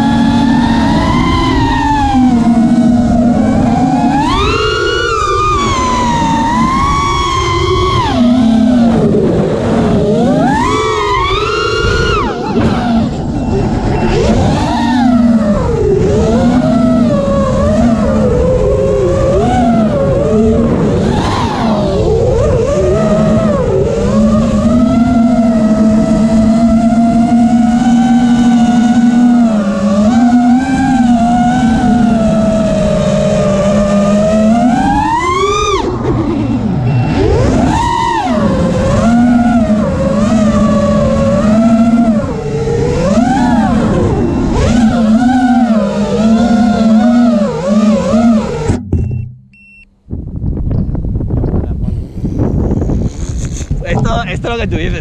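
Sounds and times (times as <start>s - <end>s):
quadcopter motors whining: 0.0s - 49.8s, 50.8s - 55.0s.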